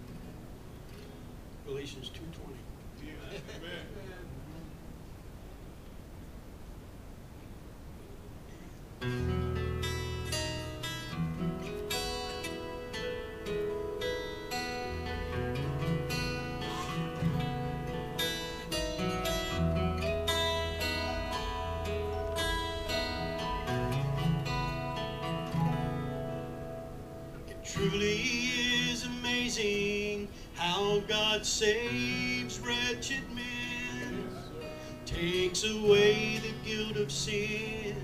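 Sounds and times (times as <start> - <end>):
electric guitar: 9.0 - 38.0
strummed acoustic guitar: 9.0 - 38.0
bass guitar: 9.1 - 29.2
keyboard: 9.1 - 38.0.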